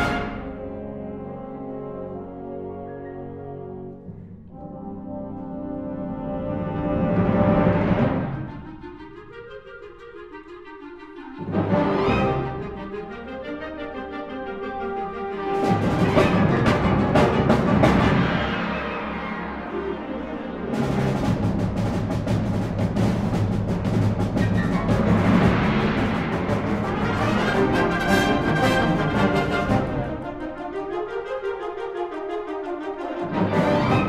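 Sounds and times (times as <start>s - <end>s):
symphonic wind band playing: 0.0s - 34.0s
timpani: 0.0s - 34.0s.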